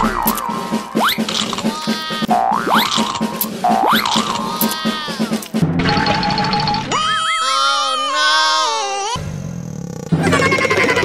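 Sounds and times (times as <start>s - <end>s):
cartoon music with steady beat: 0.0s - 7.2s.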